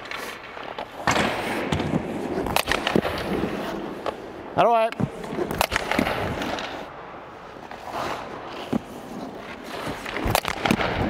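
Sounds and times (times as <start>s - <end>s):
skate blades scraping on ice: 0.0s - 4.2s, 5.0s - 11.0s.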